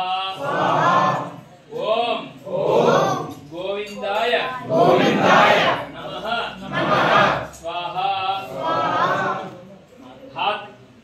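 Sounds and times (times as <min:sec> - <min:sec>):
group of voices reciting in unison: 0:00.0 - 0:03.6, 0:04.4 - 0:09.8.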